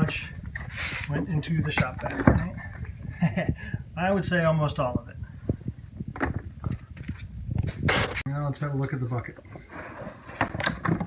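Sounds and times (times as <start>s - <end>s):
rustling scrape: 0.6s - 1.1s, 9.5s - 10.6s
plastic lid and filter clattering: 10.4s - 11.0s.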